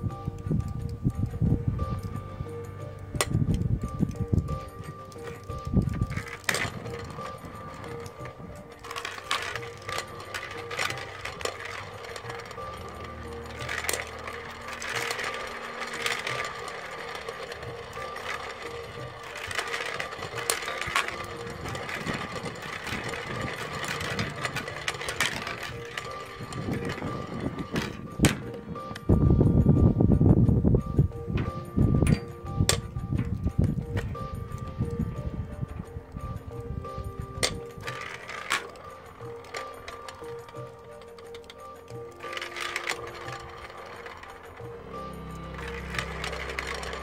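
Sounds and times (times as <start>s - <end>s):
toy balls clicking and rattling: 0.0s - 47.0s.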